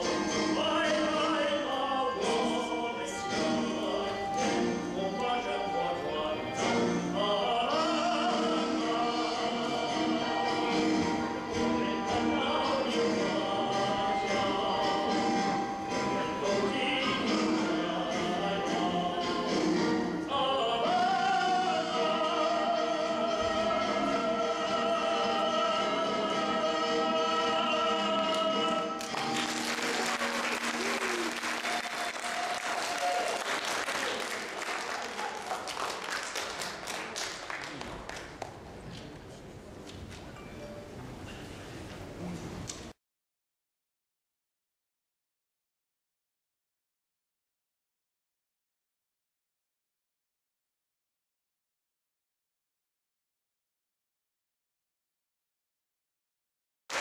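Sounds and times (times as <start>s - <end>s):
operatic male voice singing: 0.0s - 10.6s, 11.4s - 29.0s
musical accompaniment: 0.0s - 37.3s
choir-like singing: 16.0s - 29.3s.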